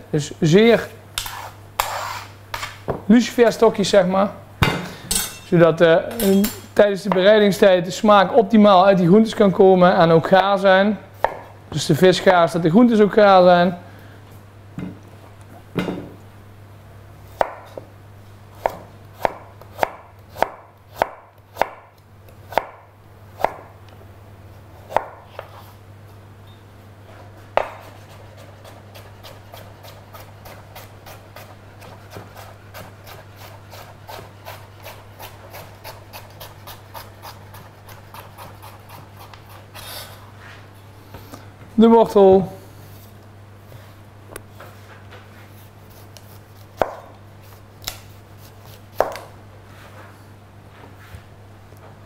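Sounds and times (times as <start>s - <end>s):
knife cutting carrot on board: 27.6s - 39.9s, 45.5s - 49.3s.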